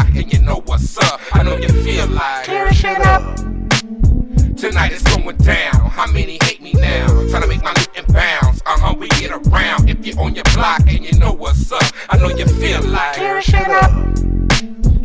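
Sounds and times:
rapping over a beat: 0.0 - 3.8, 4.5 - 15.0
deep bass line: 0.0 - 15.0.

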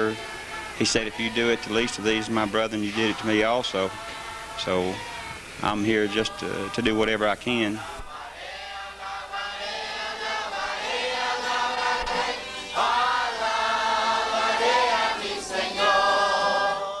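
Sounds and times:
choir singing held notes: 0.0 - 17.0.

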